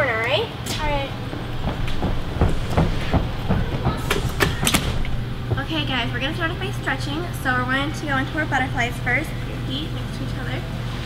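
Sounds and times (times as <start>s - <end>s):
bare feet thumping on gym floor: 0.8s - 5.9s.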